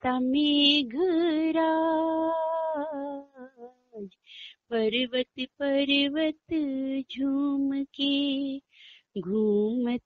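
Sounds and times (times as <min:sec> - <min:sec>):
woman singing: 0:00.0 - 0:04.1, 0:04.7 - 0:10.0.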